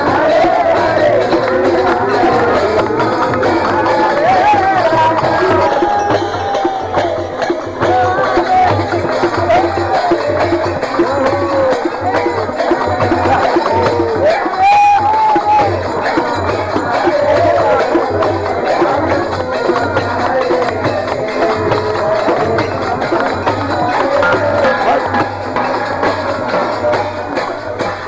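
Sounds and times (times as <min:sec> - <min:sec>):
barrel drum beat: 0:00.0 - 0:28.0
group of voices singing: 0:00.0 - 0:28.0.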